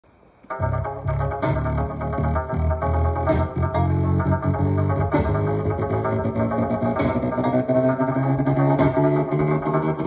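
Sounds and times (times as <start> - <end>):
trap beat with plucked strings: 0.5 - 10.0.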